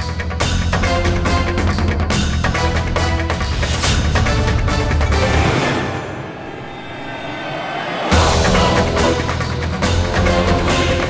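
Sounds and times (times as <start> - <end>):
suspense drone chord: 5.7 - 10.7.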